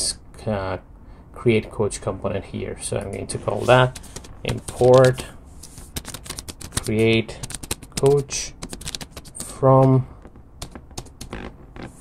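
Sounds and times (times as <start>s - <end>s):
keyboard typing: 5.8s - 9.5s, 10.6s - 12.0s.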